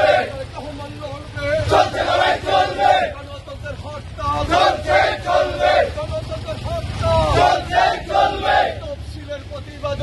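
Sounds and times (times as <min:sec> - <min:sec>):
crowd of men shouting slogans: 0:00.0 - 0:00.5, 0:01.5 - 0:03.2, 0:04.3 - 0:06.0, 0:07.1 - 0:09.0.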